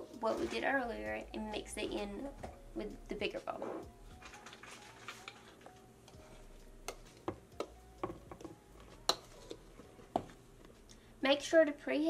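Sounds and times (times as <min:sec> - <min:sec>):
spoon knocking against bowls: 0:06.1 - 0:10.4.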